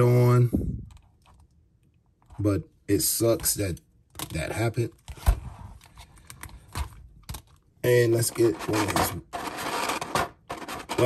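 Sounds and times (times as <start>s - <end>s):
person speaking: 2.3s - 5.0s, 7.8s - 9.3s.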